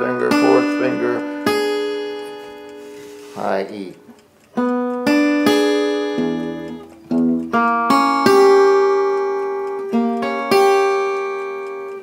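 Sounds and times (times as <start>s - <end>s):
person speaking: 0.0s - 4.2s
guitar arpeggio: 0.0s - 12.0s.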